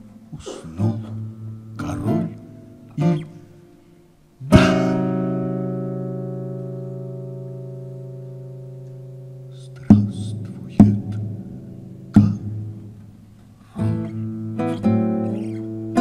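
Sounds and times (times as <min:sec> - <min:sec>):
acoustic guitar strums: 0:00.0 - 0:16.0.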